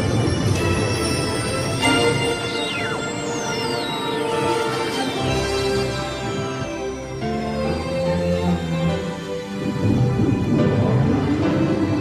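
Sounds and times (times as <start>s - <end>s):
dramatic orchestral film music: 0.0s - 12.0s.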